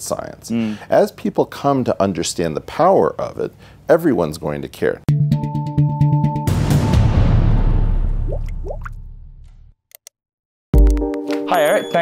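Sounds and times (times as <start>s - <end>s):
rising drip-like bloops: 8.3s - 9.0s.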